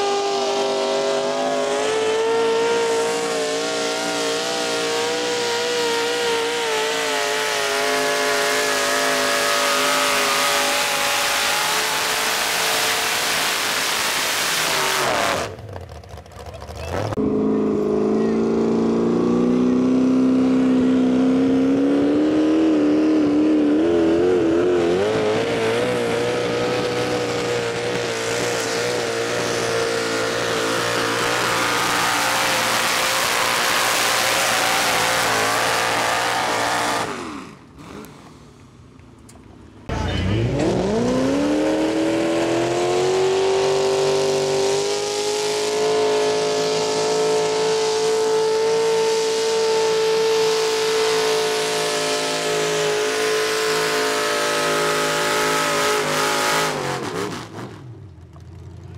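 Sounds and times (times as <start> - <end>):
engine revving up: 0.0 - 38.8, 39.9 - 58.0
tractor engine at full throttle: 0.0 - 58.9.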